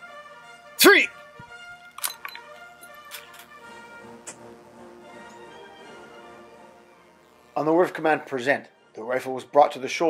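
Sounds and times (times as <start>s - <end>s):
background music: 0.0s - 10.0s
rifle clicks: 2.0s - 3.5s.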